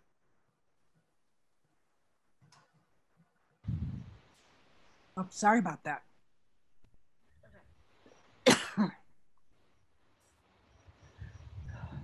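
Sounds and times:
person coughing: 0:08.5 - 0:09.0.

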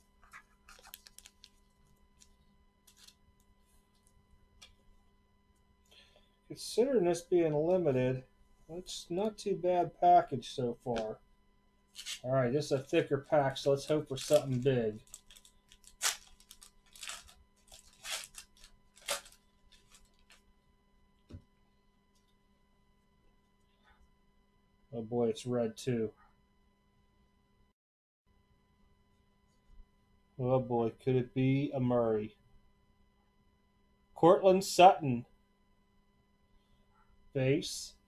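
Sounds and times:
crinkling card pack wrappers: 0:00.2 - 0:03.2, 0:11.9 - 0:20.4.

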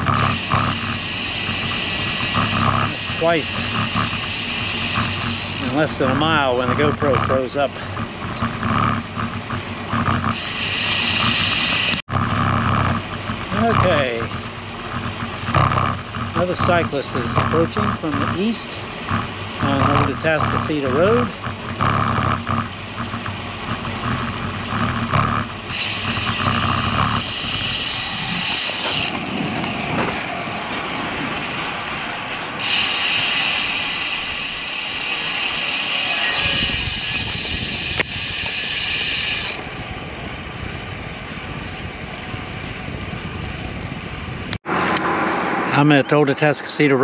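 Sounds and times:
bicycle freehub ticking: 0:00.0 - 0:29.8, 0:30.8 - 0:44.6
bike tyres rolling on asphalt: 0:00.0 - 0:44.9.

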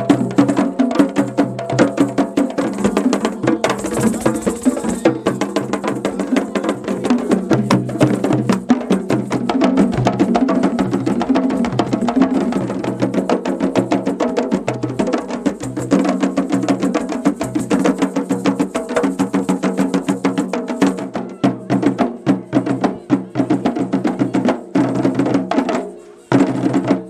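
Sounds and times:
djembe hand drums: 0:00.0 - 0:27.0.

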